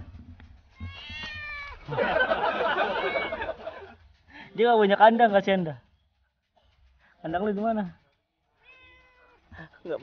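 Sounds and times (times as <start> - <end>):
cat meowing: 0.8 - 1.8, 3.0 - 3.4, 8.6 - 9.5.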